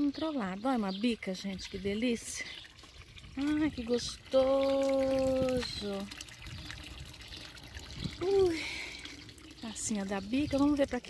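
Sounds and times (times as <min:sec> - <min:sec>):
water trickling into a trough: 0:00.0 - 0:11.0.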